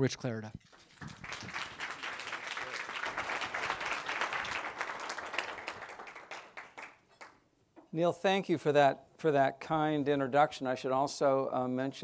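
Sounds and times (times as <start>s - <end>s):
audience applauding: 0.6s - 7.4s.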